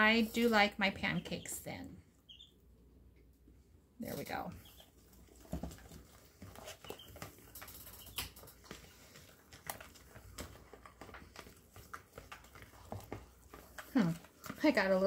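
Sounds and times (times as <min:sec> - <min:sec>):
fork stirring batter: 0:06.4 - 0:14.9.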